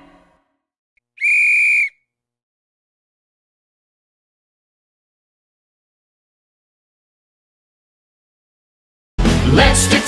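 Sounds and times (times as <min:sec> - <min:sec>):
referee's whistle blast: 0:01.2 - 0:02.0.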